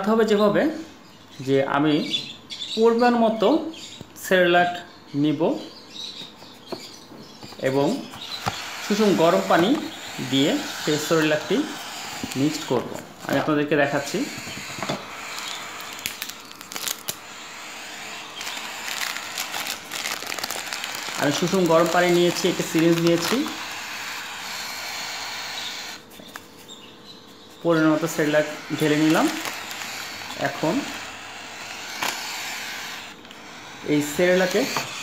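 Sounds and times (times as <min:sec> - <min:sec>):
foil bag crinkling: 0:14.4 - 0:17.2, 0:18.3 - 0:23.6, 0:28.8 - 0:31.1, 0:31.8 - 0:32.4.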